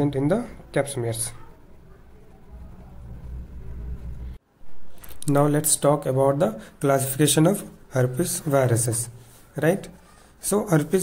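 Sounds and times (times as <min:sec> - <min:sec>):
low steady rumble: 0:02.5 - 0:04.4.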